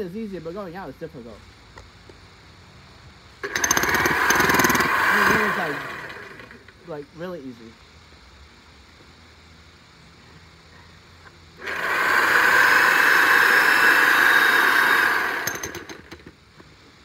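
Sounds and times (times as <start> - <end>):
electric jackhammer hammering soil: 3.4 - 6.7, 11.6 - 16.4
jackhammer sharp clicks: 3.4 - 6.8, 11.6 - 16.3.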